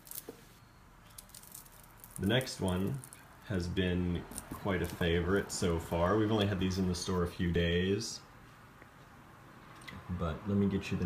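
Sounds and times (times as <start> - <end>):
handling clicks and rustles: 0.0 - 3.4, 4.2 - 7.3.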